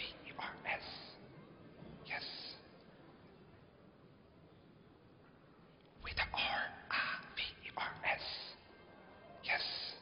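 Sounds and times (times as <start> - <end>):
person whispering: 0.0 - 1.3, 2.0 - 2.8, 6.0 - 8.7, 9.4 - 10.0.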